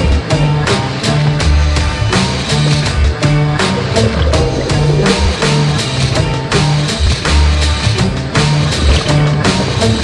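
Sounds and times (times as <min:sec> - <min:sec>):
deep bass line: 0:00.0 - 0:10.0
steady drum beat: 0:01.4 - 0:09.6
electronic music: 0:03.5 - 0:06.5.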